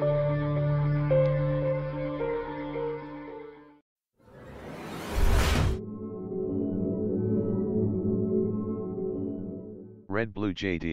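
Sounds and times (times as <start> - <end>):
ambient music with sustained tones: 5.8 - 10.0.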